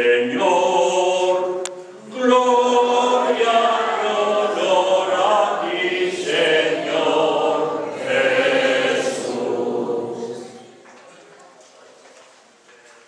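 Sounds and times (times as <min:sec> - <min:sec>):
congregation singing: 0:00.0 - 0:10.9.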